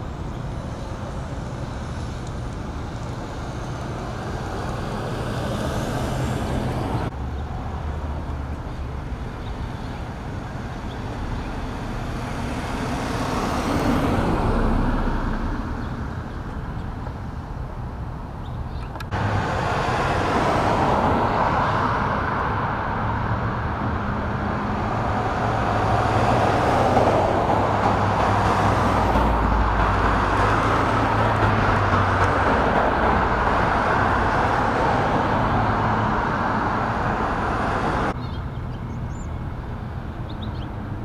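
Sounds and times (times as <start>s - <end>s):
passing cars: 0.0s - 41.0s.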